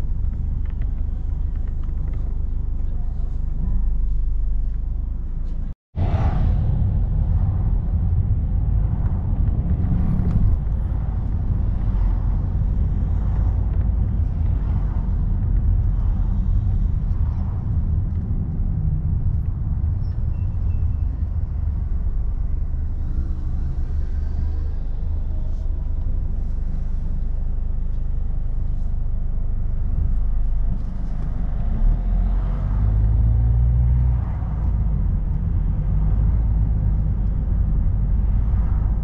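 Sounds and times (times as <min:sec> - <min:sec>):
car engine and tyres rumbling: 0:00.0 - 0:39.0.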